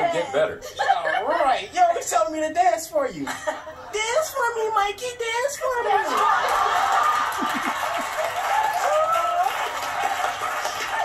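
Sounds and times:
audience laughing through tv speaker: 0:05.9 - 0:08.6.

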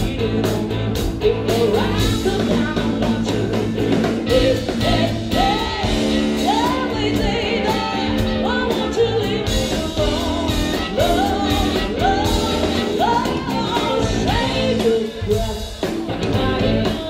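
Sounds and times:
blues-rock band playing: 0:00.0 - 0:17.0
harmonica lead line: 0:03.8 - 0:15.6.

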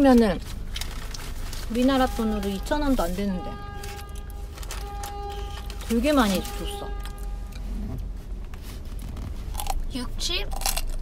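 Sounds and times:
person chewing crunchy snack: 0:09.5 - 0:11.0.

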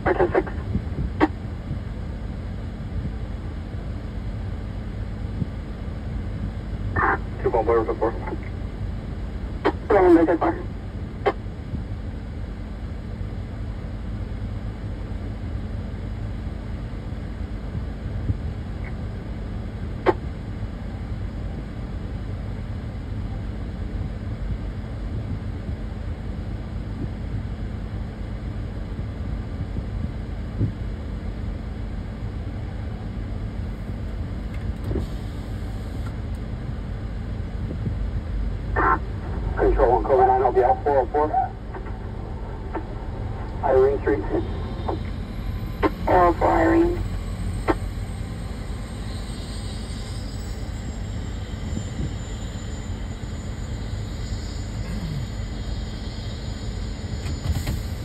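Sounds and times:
low engine rumble with hum: 0:00.0 - 0:58.0.

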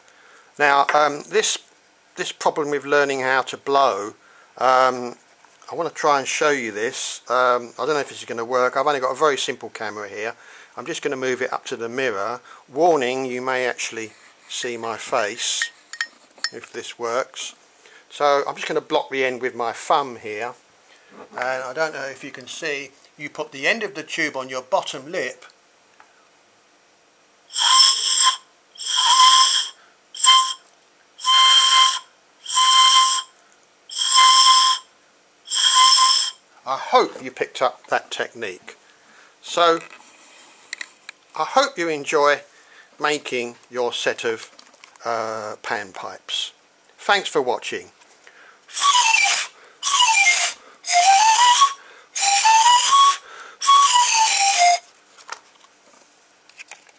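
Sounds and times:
breathy hoots blown on straw: 0:27.5 - 0:30.6, 0:31.2 - 0:34.9, 0:35.5 - 0:36.4, 0:48.7 - 0:54.8.

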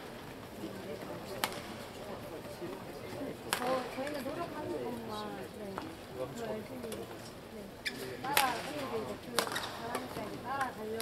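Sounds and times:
racket striking shuttlecock: 0:08.3 - 0:08.7, 0:09.4 - 0:10.1.

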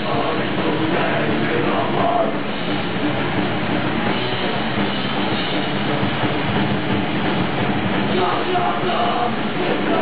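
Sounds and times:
distorted electric guitar: 0:00.0 - 0:10.0
drums: 0:00.0 - 0:10.0.

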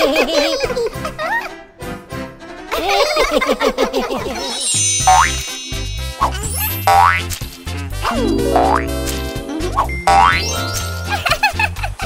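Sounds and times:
children's music with bouncing bass: 0:04.4 - 0:12.0.

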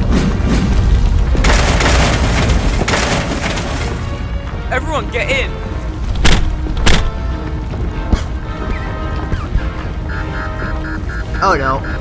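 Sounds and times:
steady low rumble: 0:00.0 - 0:04.6.

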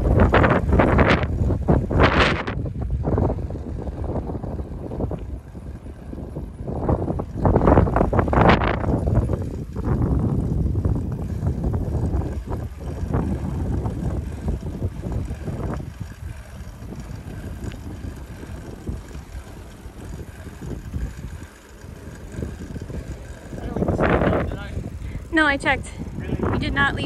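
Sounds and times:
bicycle tyre rumble on road: 0:00.0 - 0:27.0
wind buffeting microphone: 0:00.0 - 0:27.0.

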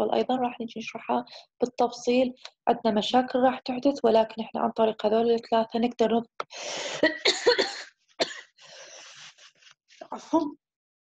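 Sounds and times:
person coughing: 0:07.0 - 0:08.6.

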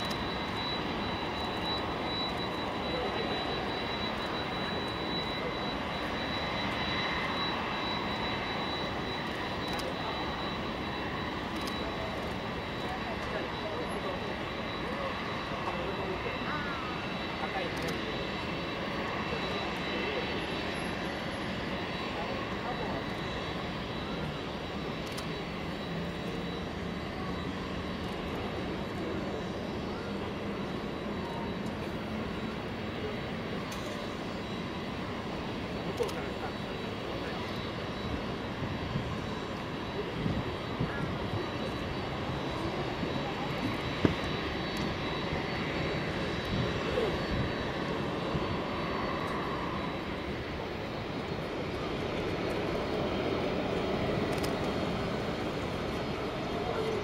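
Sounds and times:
jet turbines whining: 0:00.0 - 0:57.0.

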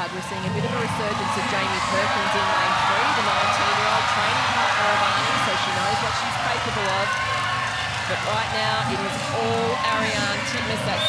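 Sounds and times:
crowd cheering: 0:00.0 - 0:11.0
television commentary: 0:00.0 - 0:11.0.

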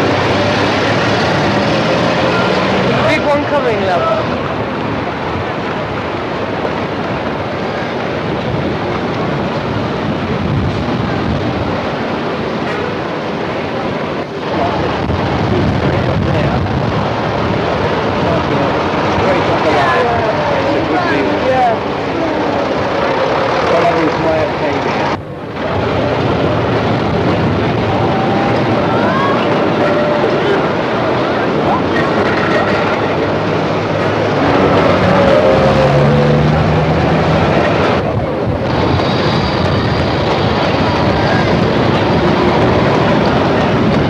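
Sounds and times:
indistinct voices: 0:00.0 - 0:44.0
street traffic: 0:00.0 - 0:44.0.

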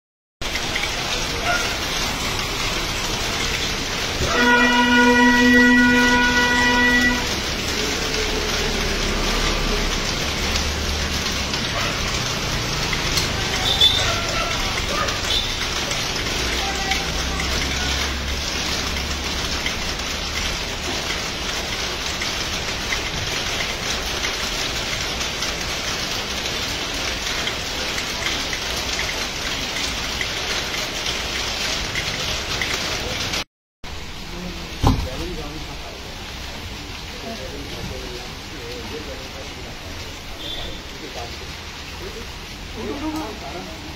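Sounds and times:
steady rain falling: 0:00.4 - 0:43.9
vehicle horn long note: 0:04.2 - 0:07.4.

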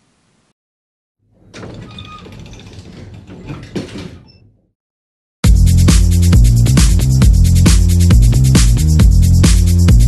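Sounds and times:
electronic music with heavy beat: 0:05.4 - 0:10.0.

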